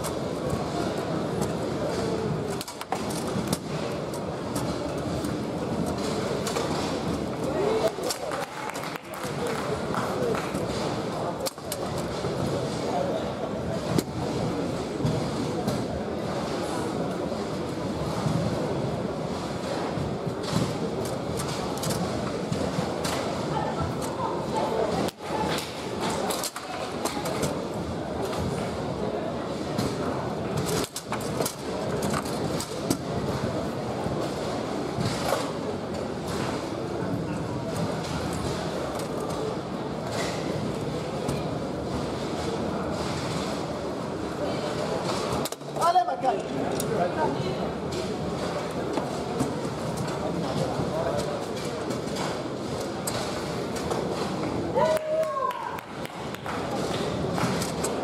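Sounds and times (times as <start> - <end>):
indistinct chatter of people: 0.0 - 58.0.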